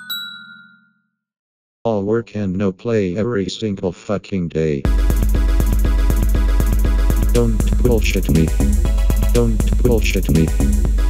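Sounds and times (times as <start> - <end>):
bell-like chime jingle: 0.0 - 1.2.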